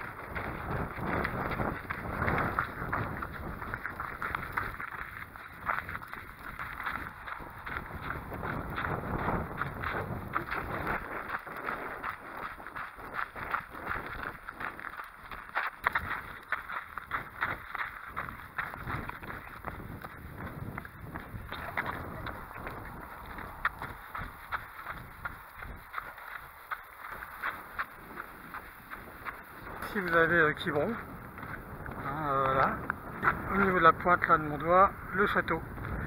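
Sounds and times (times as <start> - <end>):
footfalls on dirt path: 0.0 - 36.0
wind noise on microphone: 0.0 - 36.0.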